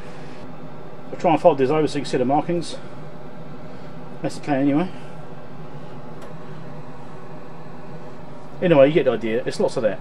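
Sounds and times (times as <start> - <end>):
fume extractor fan running: 0.0 - 10.0.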